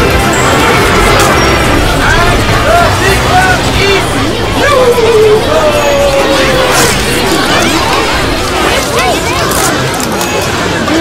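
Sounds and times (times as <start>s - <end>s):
cartoon music: 0.0s - 9.2s
overlapping cartoon character voices: 1.6s - 9.8s.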